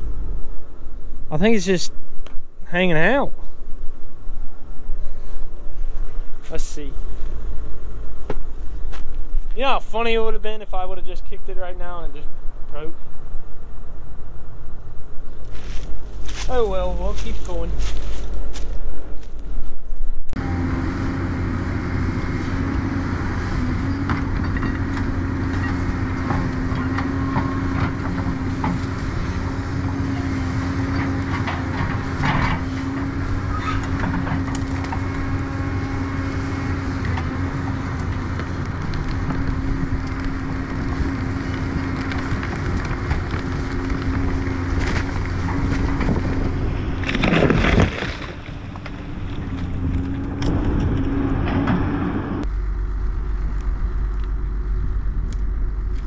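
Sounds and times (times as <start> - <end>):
excavator diesel engine running: 20.4 - 47.4, 48.3 - 56.0.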